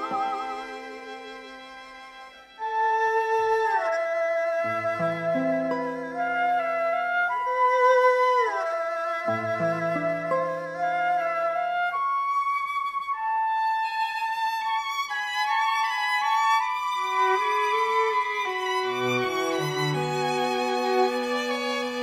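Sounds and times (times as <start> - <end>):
erhu melody: 0.0 - 22.0
flute: 0.0 - 22.0
violin: 0.0 - 22.0.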